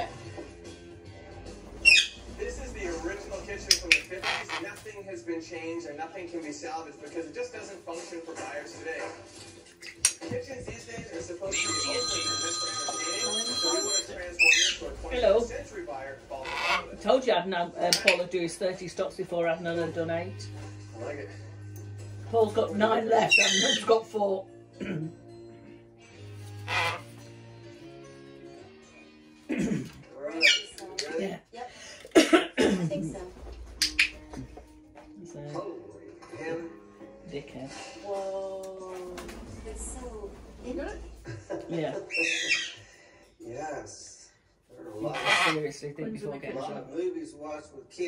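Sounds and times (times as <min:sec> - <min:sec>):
faint background music: 0:00.0 - 0:48.0
television speech: 0:00.0 - 0:48.0
macaw squawking: 0:01.8 - 0:02.6, 0:03.7 - 0:04.8, 0:14.4 - 0:15.4, 0:16.4 - 0:17.1, 0:23.1 - 0:24.0, 0:26.6 - 0:27.2, 0:30.4 - 0:30.8, 0:42.1 - 0:42.8, 0:45.0 - 0:45.7.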